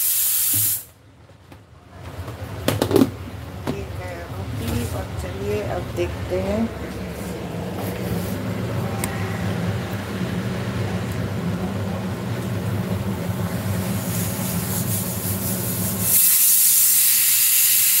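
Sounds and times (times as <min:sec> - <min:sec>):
pressure cooker whistle hissing: 0:00.0 - 0:00.9, 0:16.0 - 0:18.0.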